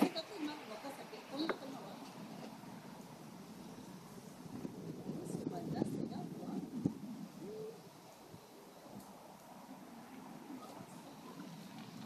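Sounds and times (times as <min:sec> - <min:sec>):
low hoot-like vocal sound: 0:07.3 - 0:09.0.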